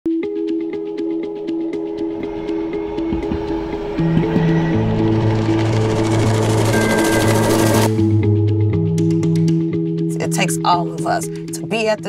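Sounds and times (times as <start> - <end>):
held chord music: 0.1 - 11.5
steady ticking beat: 1.1 - 10.6.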